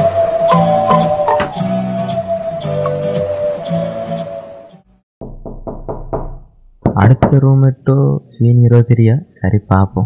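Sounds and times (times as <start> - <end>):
knocking on wooden door: 5.2 - 7.4.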